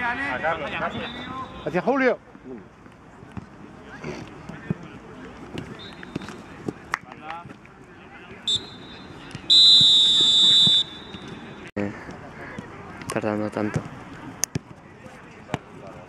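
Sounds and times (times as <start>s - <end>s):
referee's whistle blasts: 0.7s - 1.8s, 5.8s - 6.4s, 8.5s - 11.7s.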